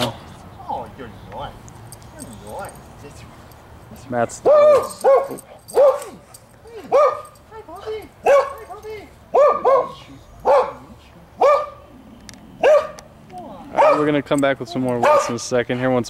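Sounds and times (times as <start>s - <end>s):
dog barking: 4.4s - 6.3s, 6.9s - 7.4s, 8.2s - 8.7s, 9.3s - 11.8s, 12.6s - 13.1s, 13.8s - 14.1s, 15.0s - 15.4s
dog yipping: 4.4s - 7.4s, 8.2s - 10.8s, 11.4s - 11.8s, 12.6s - 13.0s, 13.7s - 14.1s, 15.0s - 15.4s.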